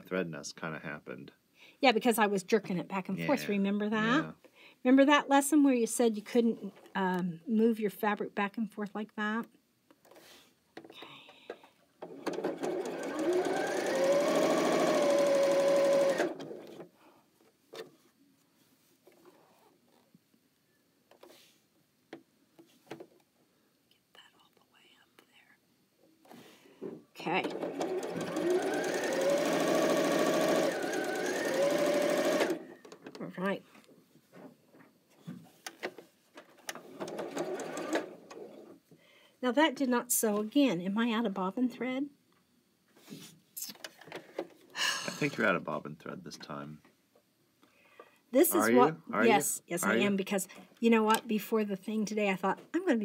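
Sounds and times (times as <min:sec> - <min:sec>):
sewing machine stitching: 0:12.0 - 0:16.8, 0:27.2 - 0:32.9, 0:36.7 - 0:38.6.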